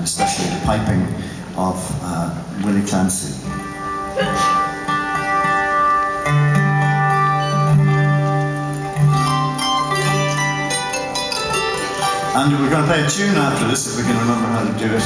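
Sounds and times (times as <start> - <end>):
acoustic instruments holding notes: 2.5 - 15.0.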